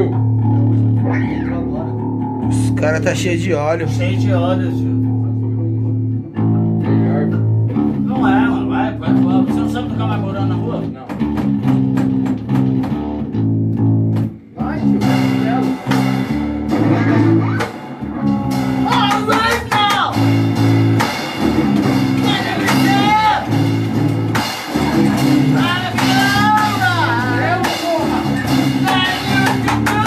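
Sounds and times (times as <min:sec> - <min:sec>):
electric guitar riff: 0:00.0 - 0:30.0.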